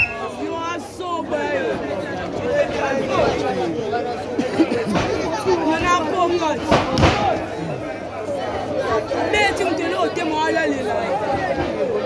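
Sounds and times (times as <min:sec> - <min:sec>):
crowd chattering and calling out: 0:00.0 - 0:12.0.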